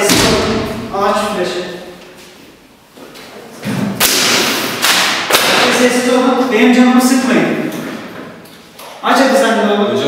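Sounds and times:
sharp thud: 0.0 - 0.9.

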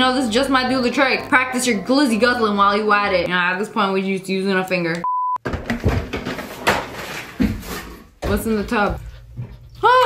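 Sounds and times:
knocks and clatter of handling: 5.4 - 9.8.

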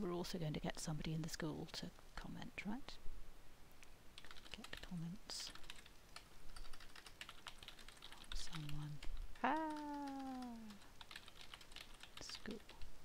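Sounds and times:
computer keyboard typing: 4.2 - 12.9.

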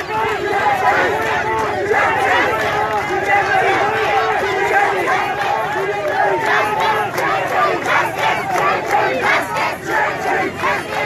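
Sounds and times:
crowd of protesters shouting: 0.0 - 11.0.

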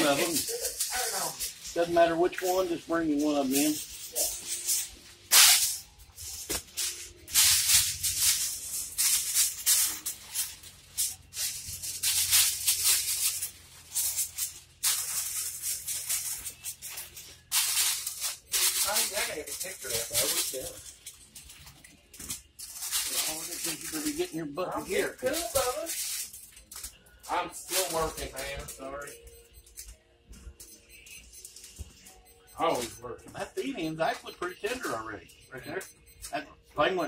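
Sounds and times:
aluminium foil crinkling: 0.0 - 29.9.

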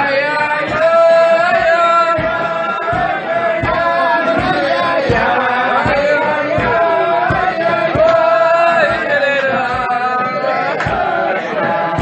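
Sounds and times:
men singing: 0.0 - 12.0.

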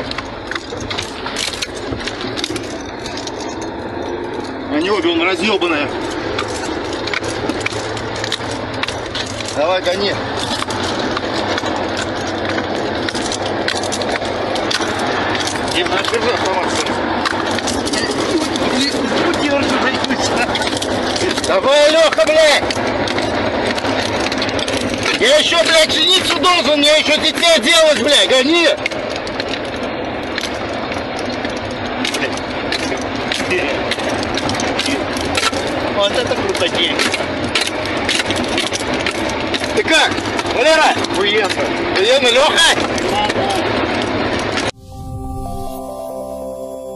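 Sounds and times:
cab rattling and clatter: 0.0 - 44.8
road and wind noise: 0.0 - 46.9
vehicle engine hum: 0.0 - 46.9.

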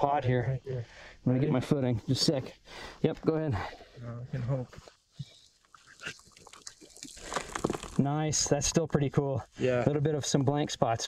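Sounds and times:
small stones clicking: 6.2 - 8.0
hand digging through dirt and gravel: 7.0 - 8.0.

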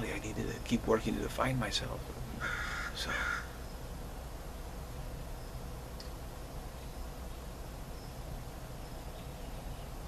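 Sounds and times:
bird cawing: 2.3 - 3.8.

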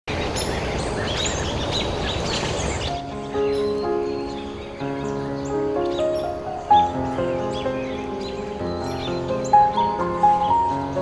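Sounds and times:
birds chirping: 0.1 - 11.0
soft music with held notes: 2.3 - 11.0.

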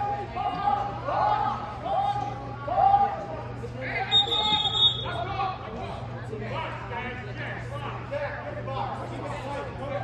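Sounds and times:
spectators talking: 0.0 - 10.0
shrill referee's whistle: 4.0 - 5.2.

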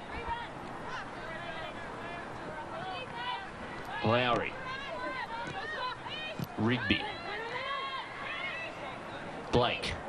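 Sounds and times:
faint stadium background: 0.0 - 10.0
players shouting and calling: 0.0 - 10.0.

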